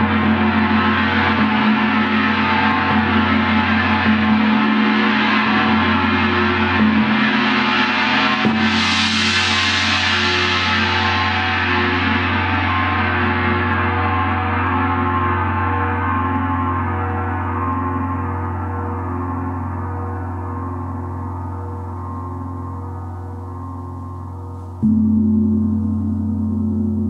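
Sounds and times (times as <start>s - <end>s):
large gongs ringing: 0.0s - 27.0s
mallet striking gong: 24.6s - 27.0s.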